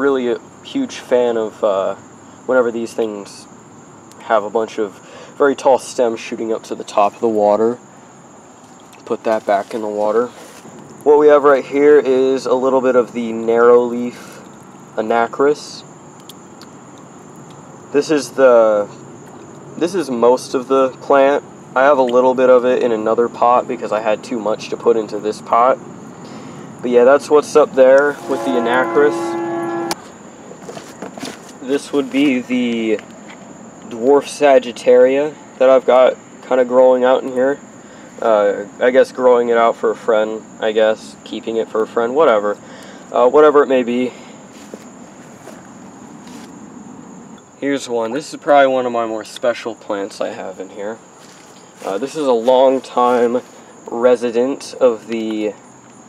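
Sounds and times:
faint background hiss: 0.0s - 56.0s
high-pitched insect trill: 0.0s - 56.0s
small ticks: 8.6s - 9.1s, 16.1s - 17.7s.

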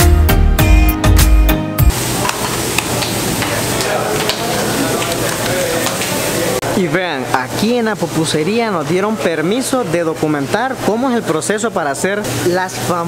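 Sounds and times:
background music: 0.0s - 1.9s.

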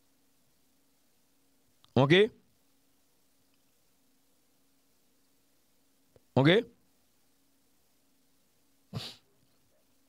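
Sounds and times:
man's short breathy vocal noise: 8.9s - 9.3s.

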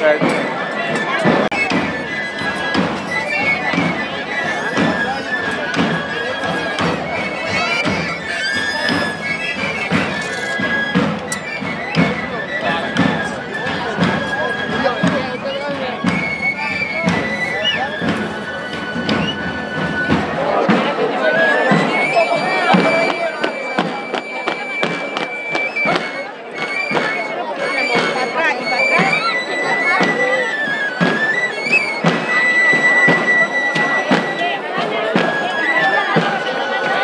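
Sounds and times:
crowd voices: 0.0s - 37.0s
tabor drum beats: 0.0s - 37.0s.

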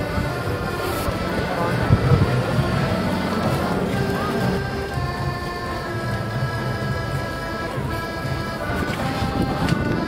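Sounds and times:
button accordion playing a waltz: 0.0s - 10.0s.

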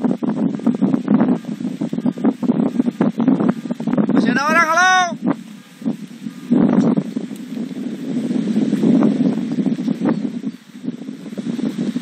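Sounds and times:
two-way radio static: 1.2s - 6.8s.

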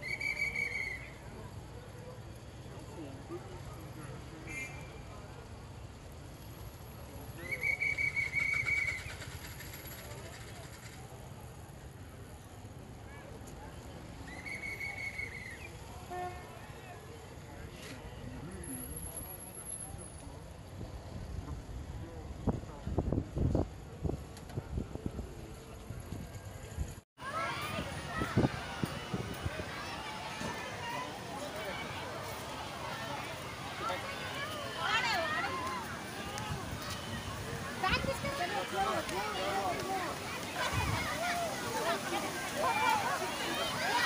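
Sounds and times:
shrill whistle trill: 0.0s - 1.2s, 7.4s - 9.1s, 14.3s - 15.7s
faint distant voices: 0.0s - 44.0s
murmur of crowd talking: 0.0s - 44.0s
wind rumbling on microphone: 20.6s - 27.0s, 27.7s - 30.6s.

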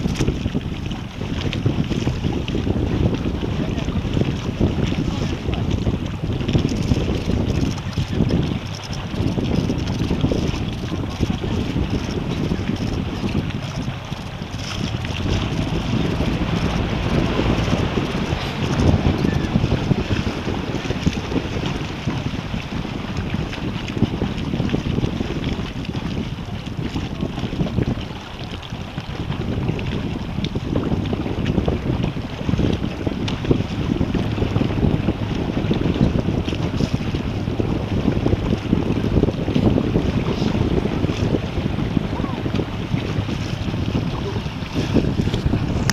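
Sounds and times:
water lapping and splashing: 0.0s - 45.9s
wind buffeting microphone: 0.0s - 45.9s.

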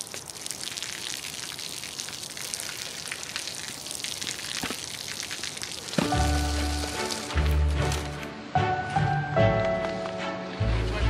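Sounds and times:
rain splashing on wet pavement: 0.0s - 8.2s.

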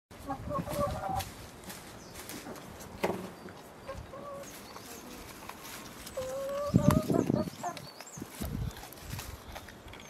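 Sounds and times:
leafy branches rustling: 0.1s - 9.9s
chickens clucking: 0.1s - 10.0s
goat chewing: 3.5s - 10.0s.

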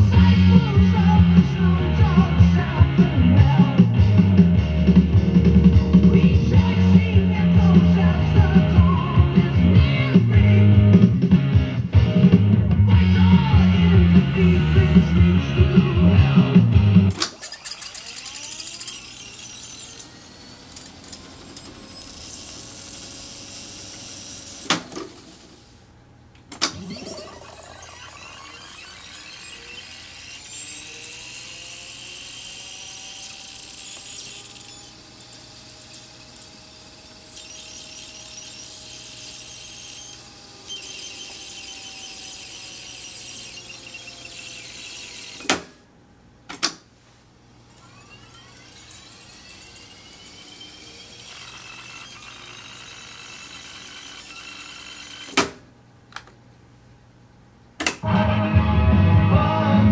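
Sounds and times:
tape deck whirring hiss: 0.0s - 45.9s, 46.5s - 56.4s
tape transport clunks: 26.3s - 29.2s.

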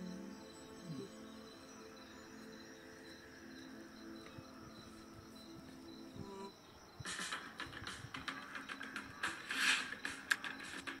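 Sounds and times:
musical drone tones: 0.0s - 9.3s
crickets chirping: 0.0s - 11.0s.

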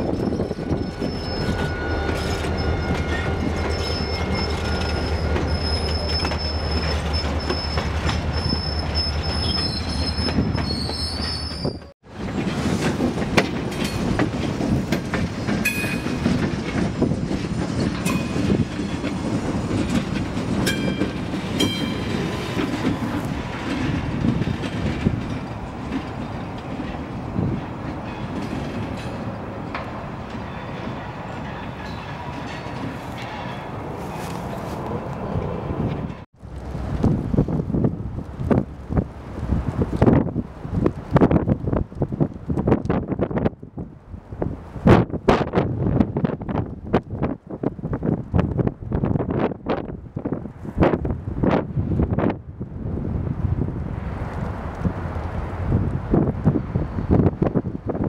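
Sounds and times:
wheel squeals: 0.0s - 11.9s.

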